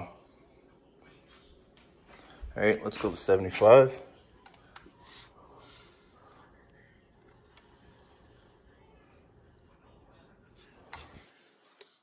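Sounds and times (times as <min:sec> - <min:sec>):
soft breaths: 0:00.4 - 0:02.6, 0:04.4 - 0:09.1.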